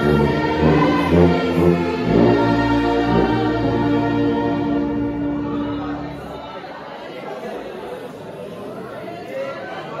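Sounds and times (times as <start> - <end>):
brass band chord: 0.0 - 6.4
many voices chattering: 0.0 - 10.0.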